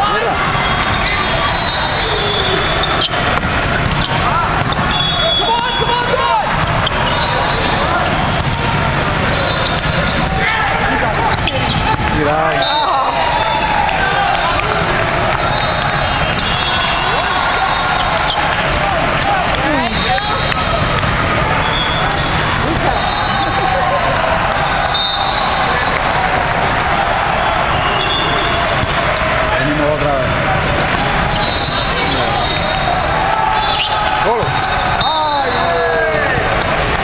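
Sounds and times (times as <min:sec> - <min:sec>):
many voices and shouts: 0:00.0 - 0:37.0
balls struck and bouncing: 0:02.8 - 0:07.2, 0:08.0 - 0:12.8, 0:18.0 - 0:22.9, 0:28.1 - 0:33.0, 0:36.1 - 0:37.0.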